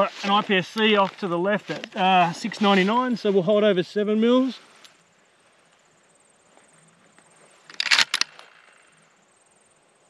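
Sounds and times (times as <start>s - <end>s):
insects chirring: 0.0s - 10.0s.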